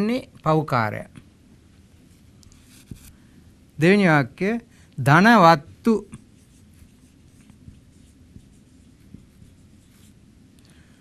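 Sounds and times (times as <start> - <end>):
low room hum: 0.0 - 11.0
marker pen scratching on whiteboard: 2.1 - 3.1, 6.1 - 10.2.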